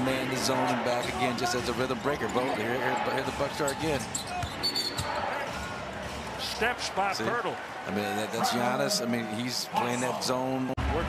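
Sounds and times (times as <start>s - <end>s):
faint arena background noise: 0.0s - 11.0s
sneaker squeak: 3.6s - 5.2s.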